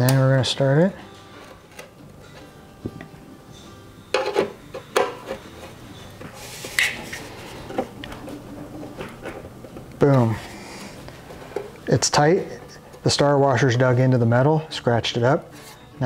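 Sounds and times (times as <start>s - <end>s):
faint background music: 0.0s - 16.0s.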